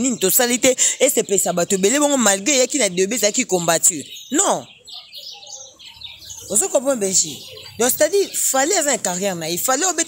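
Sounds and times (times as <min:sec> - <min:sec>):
person talking: 0:06.5 - 0:10.0.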